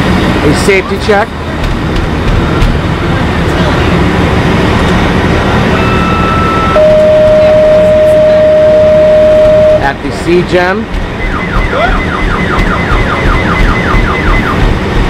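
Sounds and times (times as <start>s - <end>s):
faint high electronic tone: 5.8s - 9.9s
loud alarm tone: 5.8s - 9.9s, 11.2s - 14.7s.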